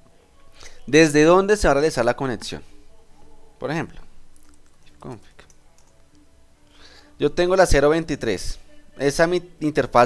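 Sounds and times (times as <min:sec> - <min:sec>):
computer keyboard typing: 0:04.3 - 0:06.2.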